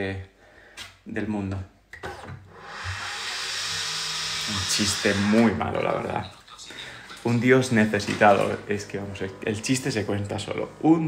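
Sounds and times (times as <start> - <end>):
kitchen appliance hissing: 2.5 - 5.6.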